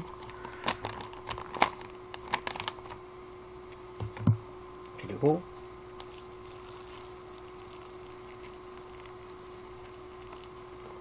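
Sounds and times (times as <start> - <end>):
boiling water pouring: 6.0 - 11.0.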